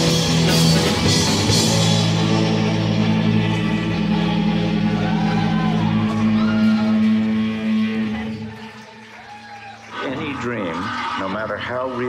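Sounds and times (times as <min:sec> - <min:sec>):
electric guitars sustained chord: 0:00.0 - 0:08.8.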